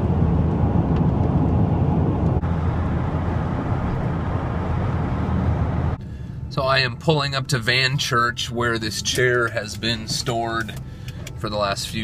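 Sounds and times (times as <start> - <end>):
road noise inside vehicle: 0.0 - 12.0
vehicle engine: 0.0 - 12.0.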